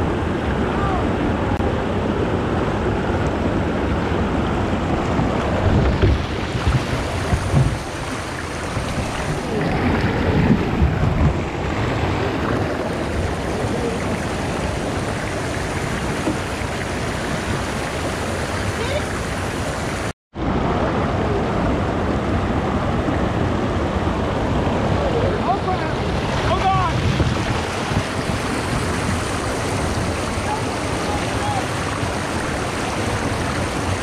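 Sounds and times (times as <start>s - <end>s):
heavy water splashing: 0.0s - 34.0s
river water rushing over rocks: 0.0s - 34.0s.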